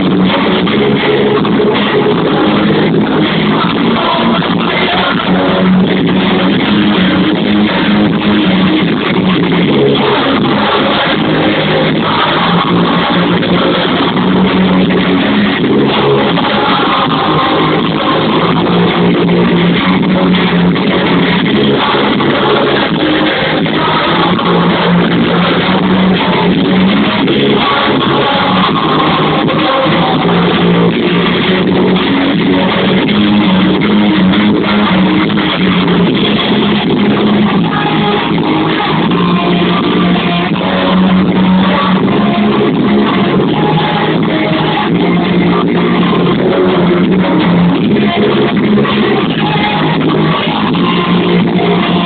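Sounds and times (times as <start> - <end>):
punk band playing loud rock: 0.0 - 52.0.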